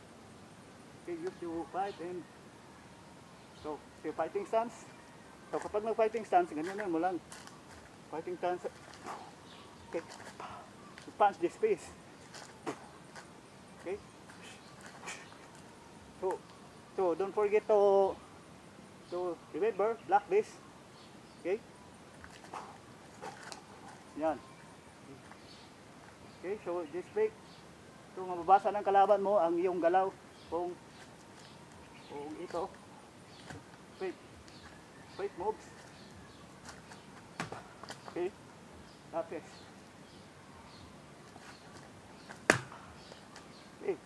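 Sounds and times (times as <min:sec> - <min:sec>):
feet scuffing on leafy dirt: 0:05.5 - 0:11.3, 0:11.9 - 0:15.7, 0:34.5 - 0:38.2
hand slap: 0:42.4 - 0:42.8.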